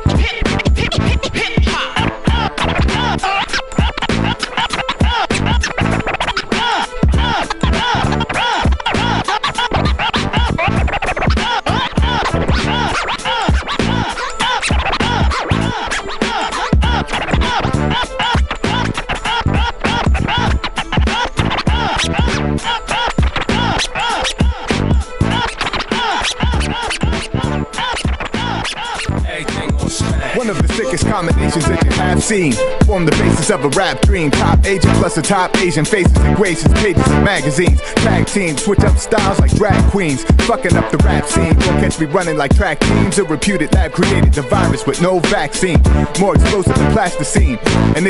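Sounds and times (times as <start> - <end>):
hip hop beat: 0.0 - 48.0
vinyl scratching: 0.0 - 48.0.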